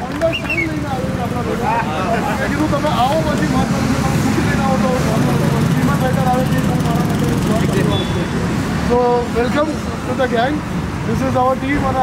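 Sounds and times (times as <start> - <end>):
low rumble of street traffic: 0.0 - 12.0
man talking: 0.0 - 12.0.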